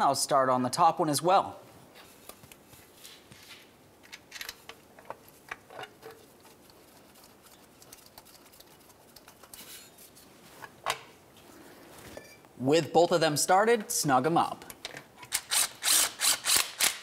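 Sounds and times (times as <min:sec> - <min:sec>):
soft rustle: 0:01.8 - 0:03.7, 0:06.2 - 0:12.3.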